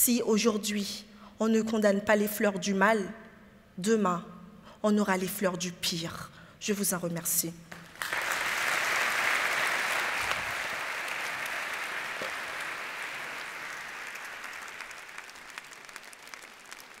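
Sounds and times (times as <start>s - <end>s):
audience applauding: 7.8s - 17.0s.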